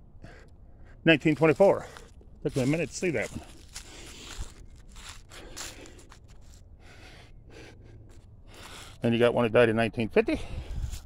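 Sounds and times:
footsteps on leaves: 1.2 - 6.6.

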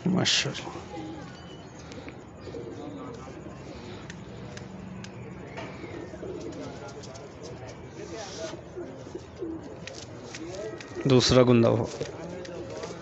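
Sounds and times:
faint murmured voices: 0.0 - 13.0
pigeons cooing: 0.7 - 13.0.

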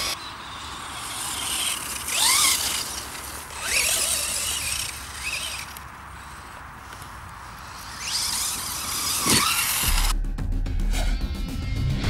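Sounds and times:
electric motor whining: 0.0 - 10.1
music: 9.8 - 12.0.

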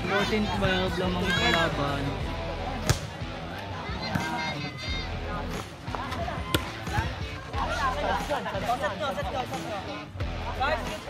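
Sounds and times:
chatter of players: 0.0 - 11.0
volleyball hit by hand: 2.8 - 3.2.

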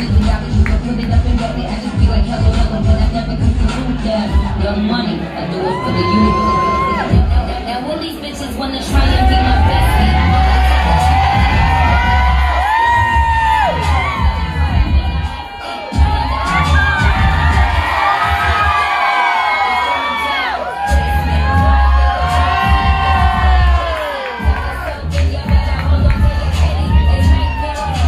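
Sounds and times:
song over sound system: 0.0 - 19.1
audience cheering and whooping: 4.1 - 7.7, 8.8 - 28.0.

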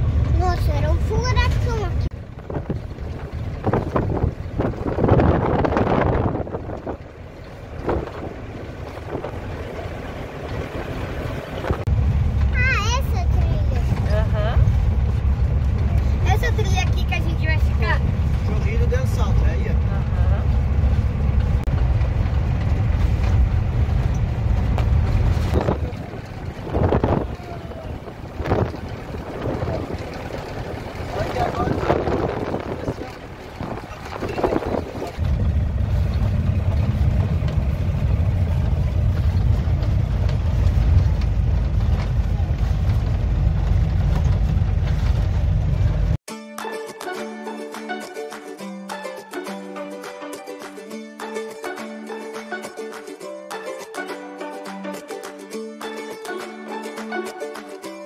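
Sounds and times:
vehicle engine and road rumble: 0.0 - 46.3.

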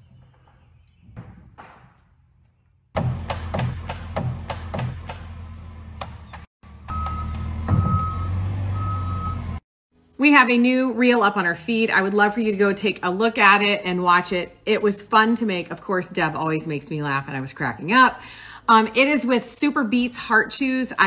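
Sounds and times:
sharp knocks of framing work: 0.1 - 6.5
diesel engine running: 4.3 - 9.6
reversing alarm beeps: 6.9 - 9.5.

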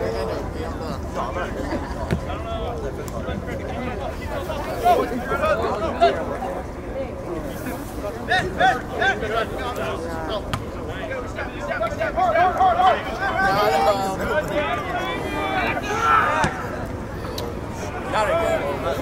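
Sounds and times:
crowd chatter: 0.0 - 19.0
voices calling out: 0.0 - 19.0
loud shouts: 12.0 - 18.7.

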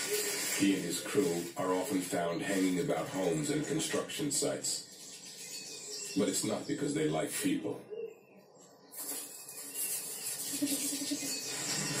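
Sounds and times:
television hiss: 0.0 - 12.0.

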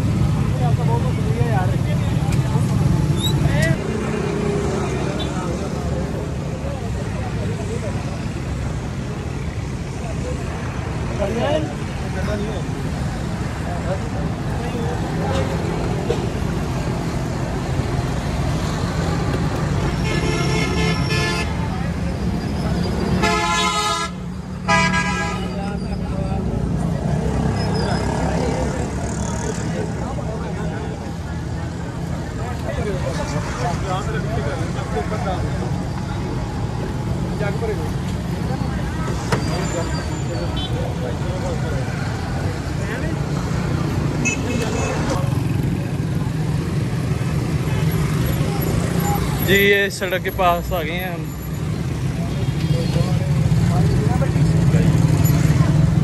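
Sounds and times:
traffic engine hum: 0.0 - 56.0
vehicle horns honking: 19.8 - 21.6, 23.1 - 25.7, 44.2 - 45.1.

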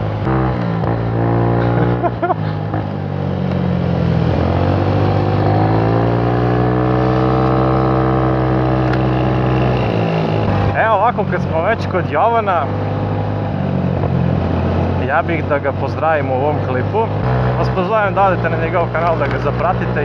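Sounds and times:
scooter engine running: 0.0 - 20.0.

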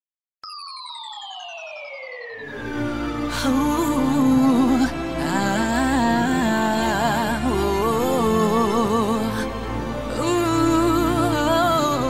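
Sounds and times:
electronic tone gliding down: 0.4 - 5.2.

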